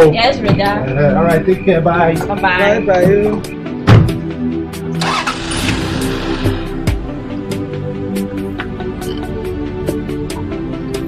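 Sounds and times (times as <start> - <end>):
background music: 0.0 - 11.0
car engine starting: 4.8 - 7.7.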